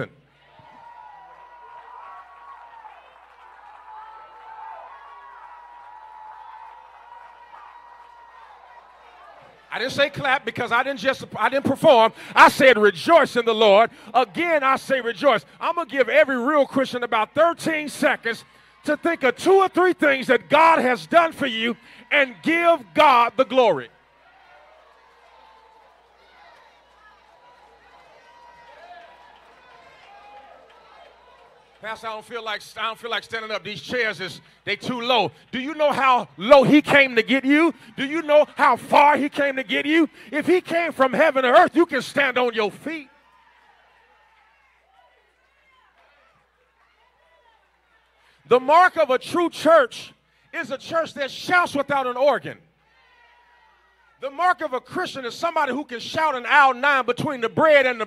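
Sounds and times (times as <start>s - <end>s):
congregation calling out and praising: 0.0s - 0.2s, 3.8s - 24.1s, 31.8s - 43.2s, 48.4s - 52.7s, 54.2s - 58.0s
congregation praising aloud: 9.7s - 23.9s.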